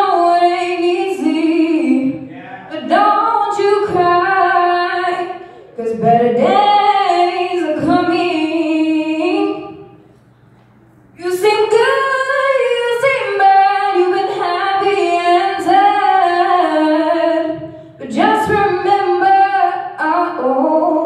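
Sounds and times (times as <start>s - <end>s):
woman singing unaccompanied: 0.0s - 10.0s, 11.2s - 21.0s.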